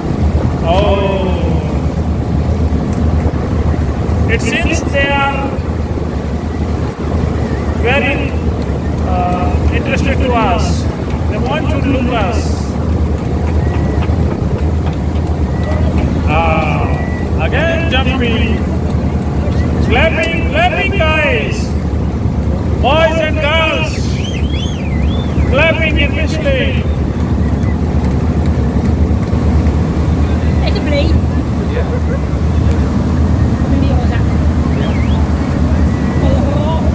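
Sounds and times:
motorboat motor running: 0.0s - 36.9s
wind rumbling on microphone: 0.0s - 36.9s
man's voice: 0.6s - 2.0s, 4.3s - 5.7s, 7.8s - 12.8s, 16.2s - 18.7s, 19.7s - 21.8s, 22.8s - 24.3s, 25.5s - 26.9s
wavering whistling: 3.4s - 36.9s.

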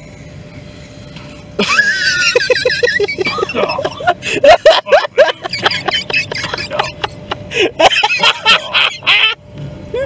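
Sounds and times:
vehicle rumble: 0.0s - 10.0s
people laughing hard: 1.6s - 9.4s.

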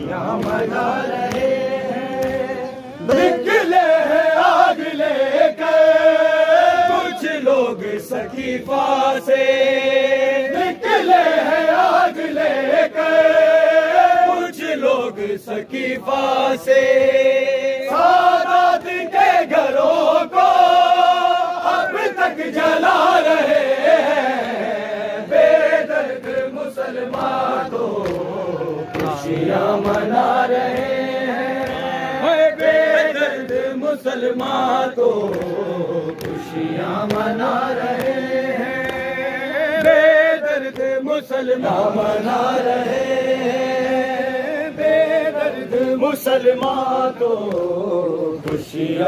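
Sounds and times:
men chanting together: 0.0s - 49.0s
reciter leading chant: 0.0s - 49.0s.

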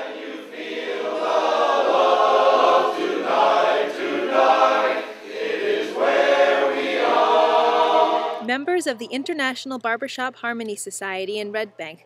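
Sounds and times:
unaccompanied close harmony singing: 0.0s - 8.5s.

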